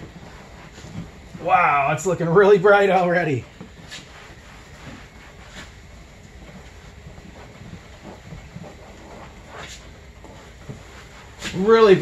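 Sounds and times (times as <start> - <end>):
towel rubbing vinyl seat: 0.0 - 12.0.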